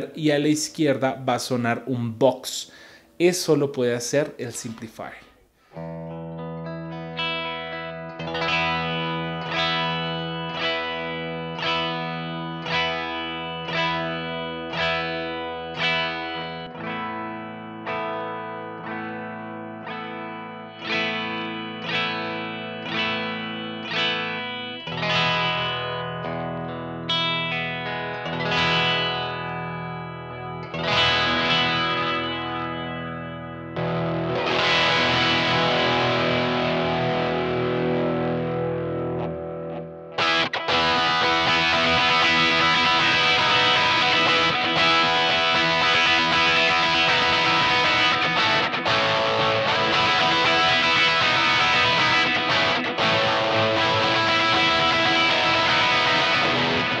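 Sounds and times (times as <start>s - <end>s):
electric guitar chords: 5.5s - 57.0s.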